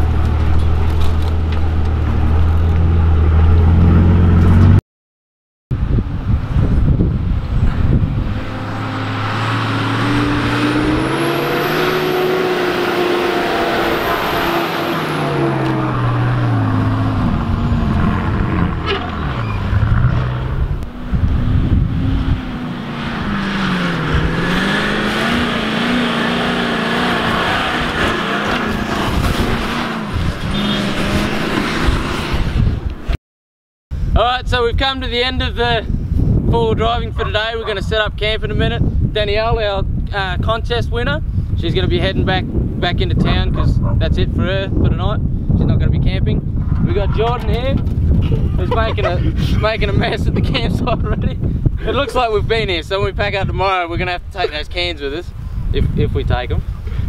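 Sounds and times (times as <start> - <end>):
engines revving under load: 6.2 - 33.1, 46.4 - 57.0.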